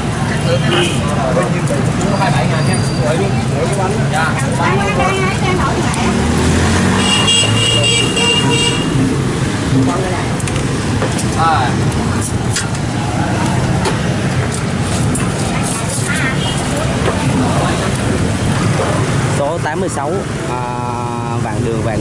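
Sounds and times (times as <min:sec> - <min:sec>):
motorbikes passing: 0:00.0 - 0:22.0.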